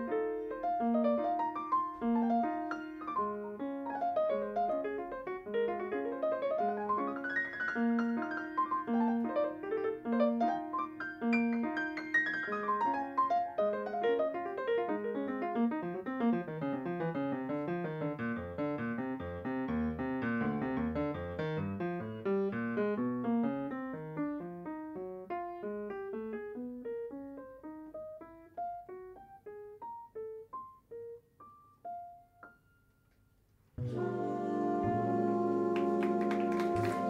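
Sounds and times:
grand piano playing jazz: 0:00.0 - 0:33.0, 0:33.8 - 0:37.0.

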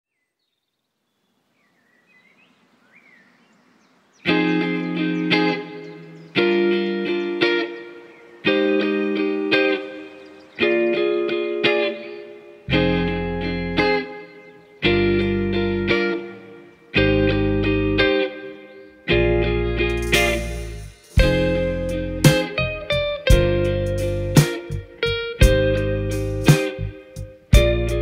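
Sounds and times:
electric guitar chords: 0:04.2 - 0:28.0
deep low notes: 0:12.7 - 0:13.9.

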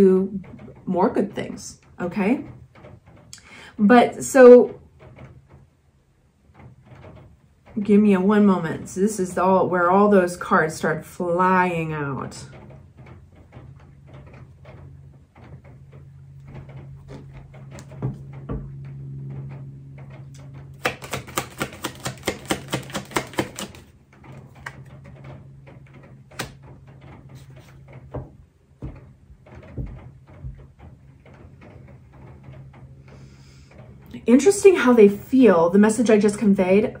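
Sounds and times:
cards shuffling: 0:20.8 - 0:23.9, 0:26.4 - 0:26.6.

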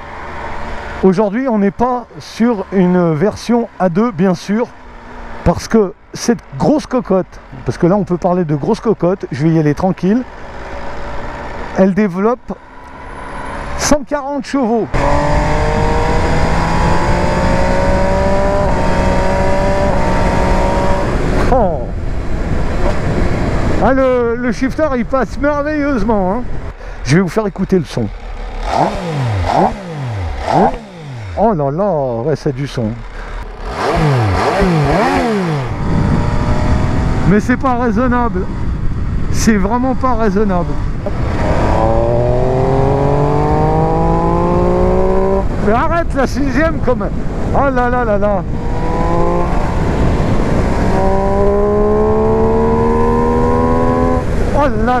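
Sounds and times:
motorcycle engine revving: 0:10.0 - 0:24.4, 0:27.4 - 0:55.0
wind rush on microphone: 0:15.0 - 0:26.8, 0:34.0 - 0:55.0.

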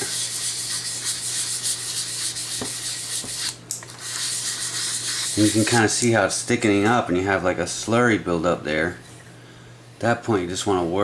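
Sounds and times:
sandpaper rubbing on wood: 0:00.0 - 0:05.9.

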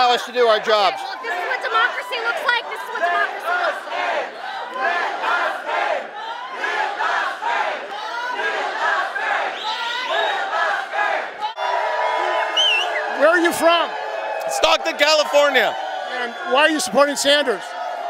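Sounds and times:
crowd of protesters' voices: 0:00.0 - 0:18.0.

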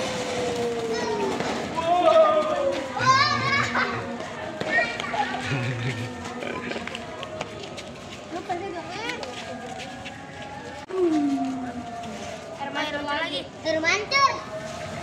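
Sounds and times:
children shouting excitedly: 0:00.7 - 0:04.1.

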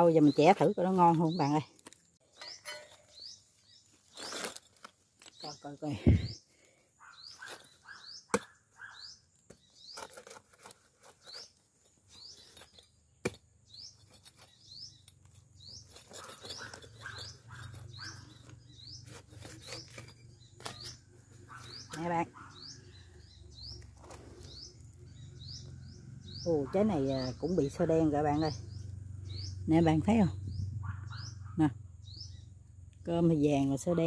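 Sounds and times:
bird chirping: 0:00.0 - 0:34.0
machete chopping fruit: 0:08.3 - 0:08.6.

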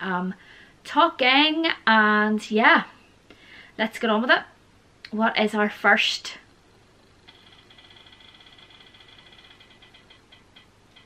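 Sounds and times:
electronic ticks of spinning wheel: 0:07.3 - 0:11.0.

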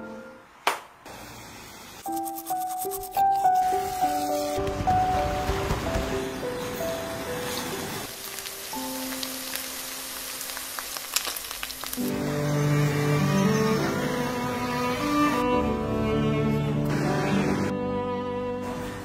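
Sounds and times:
string music: 0:02.0 - 0:09.3, 0:12.0 - 0:19.0
music: 0:02.0 - 0:10.6, 0:11.2 - 0:19.0
hot oil sizzling: 0:07.0 - 0:12.8.

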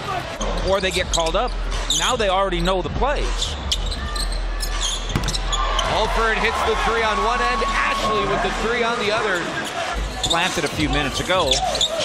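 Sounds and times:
arena crowd noise: 0:00.0 - 0:12.0
sneaker squeaks: 0:00.4 - 0:02.2, 0:03.3 - 0:05.9, 0:09.3 - 0:12.0
basketball bouncing on hardwood: 0:05.1 - 0:05.4.

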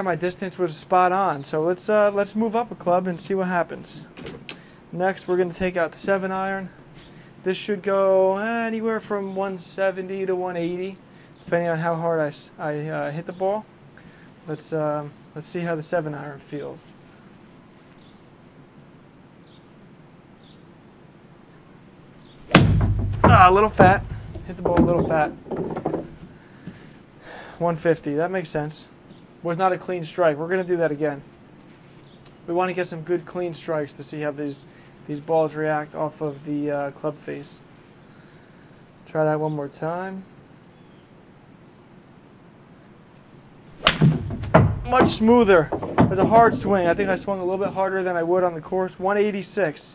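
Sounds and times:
faint steady hiss: 0:00.0 - 0:49.9
golf club striking ball: 0:22.5 - 0:24.6, 0:43.8 - 0:47.7
golf club swing whoosh: 0:43.8 - 0:44.3.

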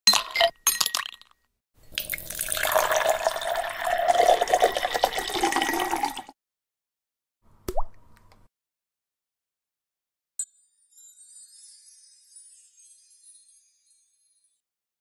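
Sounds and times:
ice cubes clinking in glass: 0:00.1 - 0:01.3, 0:01.9 - 0:06.3
milk pouring and splashing: 0:01.9 - 0:06.3.

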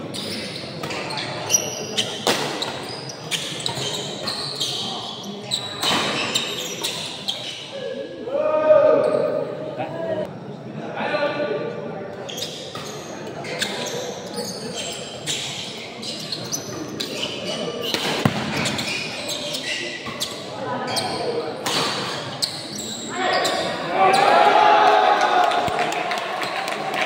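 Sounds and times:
crowd chatter: 0:00.0 - 0:27.0.

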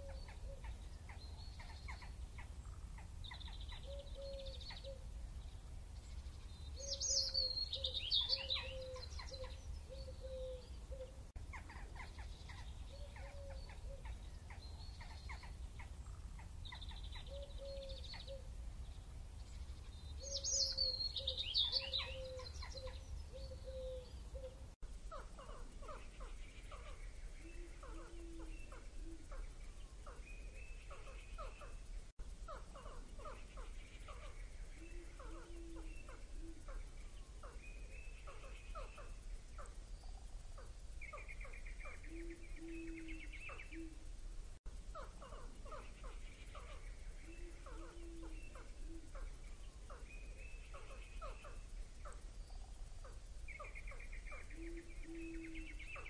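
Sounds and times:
birds chirping and calling: 0:00.0 - 0:44.2, 0:44.8 - 0:56.0.

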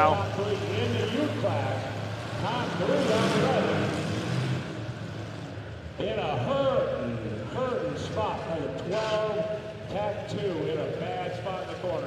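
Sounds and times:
car engines running: 0:00.0 - 0:12.0.

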